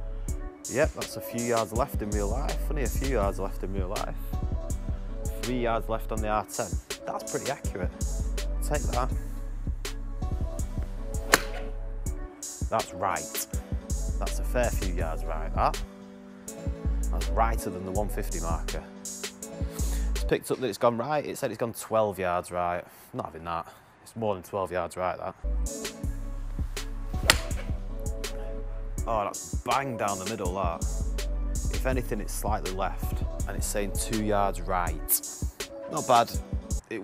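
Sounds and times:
background music with steady beat: 0.0s - 20.7s, 25.4s - 37.0s
golf club striking ball: 11.2s - 11.8s, 27.2s - 27.8s.

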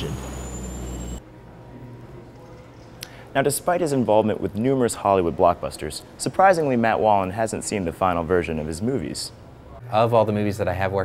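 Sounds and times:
hovering craft engine rushing: 0.0s - 1.2s
faint high whine: 0.0s - 2.2s.

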